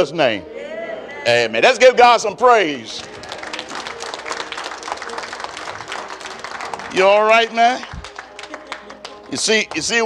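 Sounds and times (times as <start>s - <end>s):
crowd applauding: 2.8s - 10.0s.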